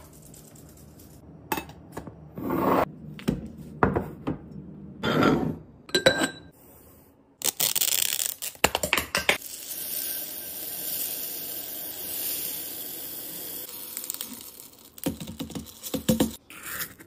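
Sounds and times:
beads pouring into glass jar: 0:09.4 - 0:16.0.

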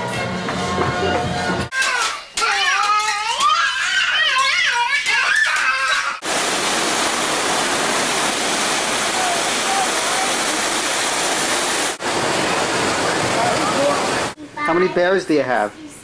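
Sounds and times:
water and wind rushing: 0:06.2 - 0:14.4.

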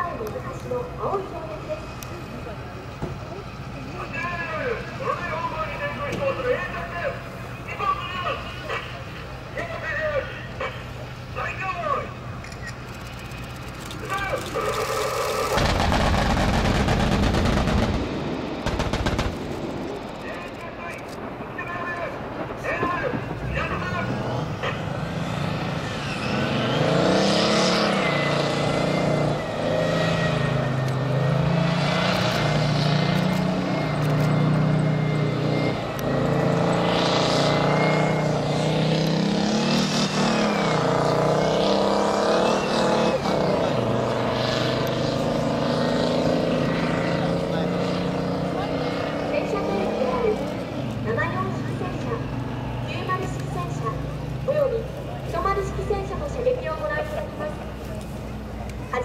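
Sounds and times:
tracked vehicle diesel engine: 0:00.0 - 0:59.0.

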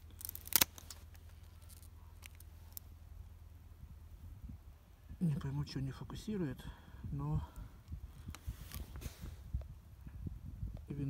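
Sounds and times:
pruning shears snapping cane: 0:00.0 - 0:02.8.

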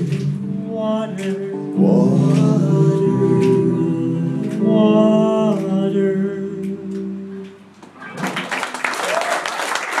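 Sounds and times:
voices singing in harmony: 0:00.0 - 0:07.4
clapping: 0:08.1 - 0:10.0.

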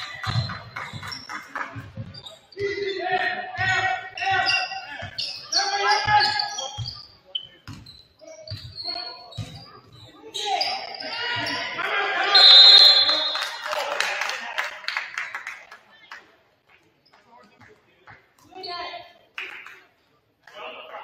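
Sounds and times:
players shouting: 0:11.0 - 0:14.0
referee's whistle: 0:12.3 - 0:13.7.

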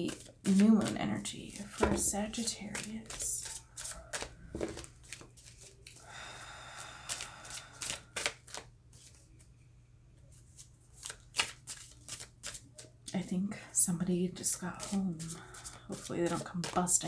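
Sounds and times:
soft card rustle: 0:00.0 - 0:06.0, 0:07.0 - 0:09.6, 0:10.2 - 0:13.3, 0:14.4 - 0:17.0
cards snapping while shuffled: 0:07.1 - 0:09.2, 0:11.0 - 0:12.6.

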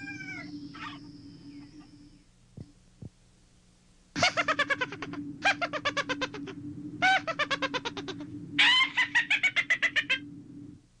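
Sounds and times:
steady low tone: 0:00.0 - 0:11.0
high-pitched witch's cackle: 0:04.2 - 0:10.3.

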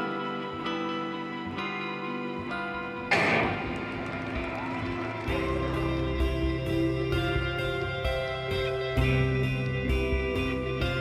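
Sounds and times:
background music with guitar: 0:00.0 - 0:11.0
deep bass: 0:03.2 - 0:11.0.

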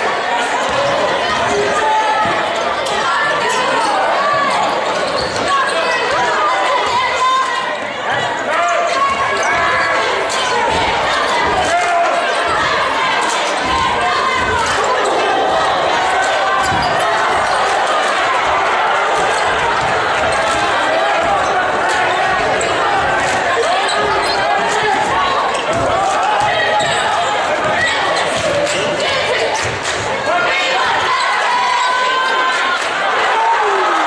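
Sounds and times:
crowd chatter: 0:00.0 - 0:34.0.

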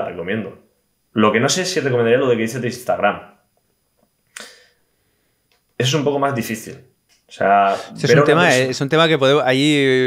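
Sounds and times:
man speaking: 0:05.8 - 0:06.8, 0:07.4 - 0:10.0.

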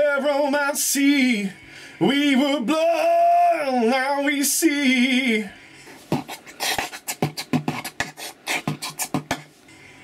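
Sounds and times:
beatboxing clicks and puffs: 0:05.9 - 0:09.6.

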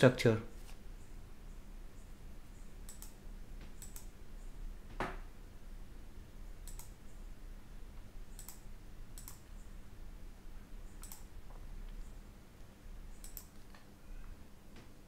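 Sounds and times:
low electrical hum: 0:00.0 - 0:15.0
computer mouse clicks: 0:02.8 - 0:04.1, 0:06.6 - 0:07.0, 0:08.3 - 0:09.4, 0:10.9 - 0:11.3, 0:13.1 - 0:13.9.

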